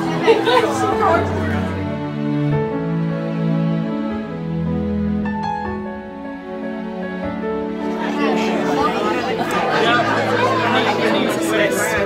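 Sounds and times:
people chatting: 0.0 - 1.8, 7.9 - 12.0.

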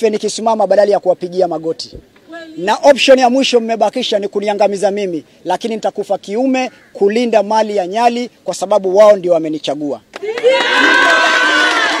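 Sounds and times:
crowd of men shouting and cheering: 10.2 - 12.0.

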